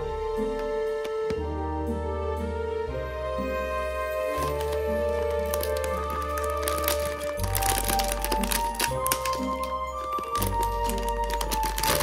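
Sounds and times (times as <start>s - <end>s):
background music: 0.0s - 12.0s
foil bag crinkling: 4.3s - 12.0s.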